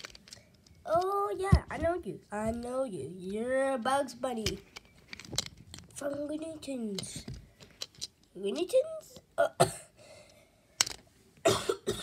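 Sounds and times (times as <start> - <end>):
person coughing: 9.4 - 10.0, 11.4 - 12.0.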